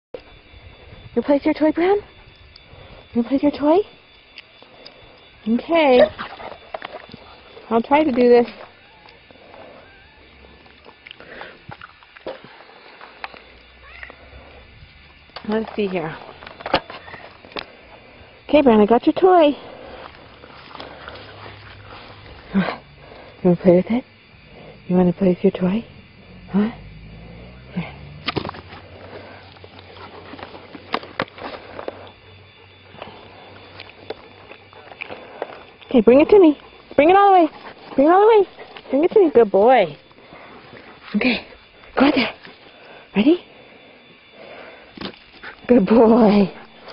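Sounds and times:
low steady hum: 0.2 - 46.9
faint rustles: 19.4 - 25.0, 25.9 - 36.0.

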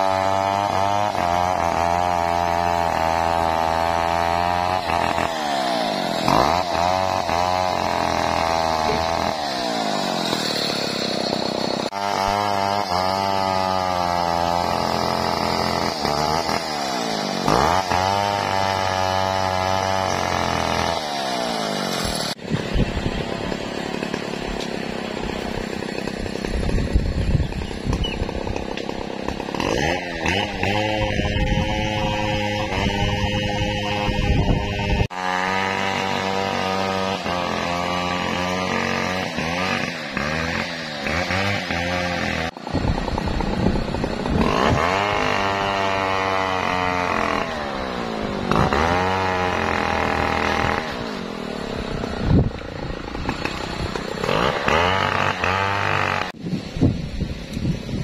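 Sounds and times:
chainsaw cutting logs: 0.0 - 58.0.

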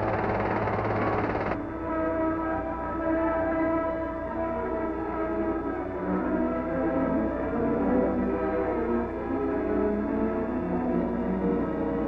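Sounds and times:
aircraft engine roar: 0.0 - 1.9.

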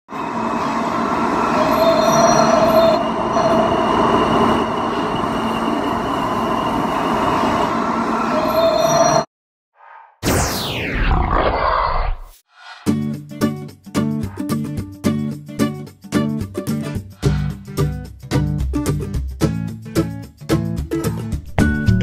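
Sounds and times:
subway train rail rumble: 0.1 - 9.1
high ringing wheel tones: 0.2 - 7.2.

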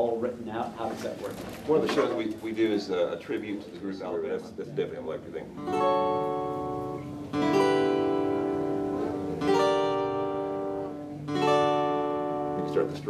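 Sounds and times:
acoustic guitar chords: 4.0 - 13.0.

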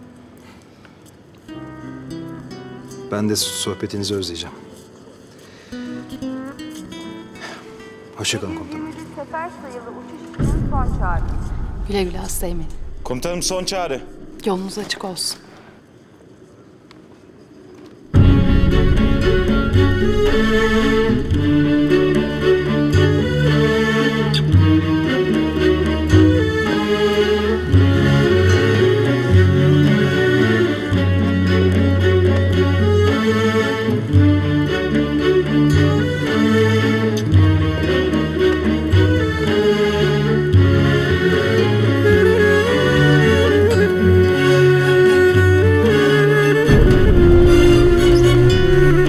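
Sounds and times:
string-led background music: 1.1 - 15.2, 18.2 - 49.0
long held bass notes: 46.5 - 49.0.

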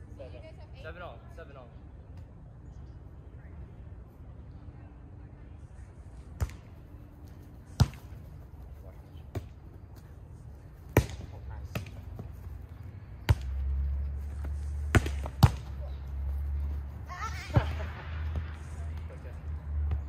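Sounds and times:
volleyball slaps: 10.9 - 12.0, 14.8 - 15.9.

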